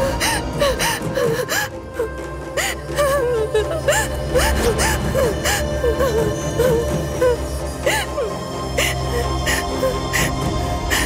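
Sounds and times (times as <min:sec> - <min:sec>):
background music score: 0:00.0 - 0:11.0.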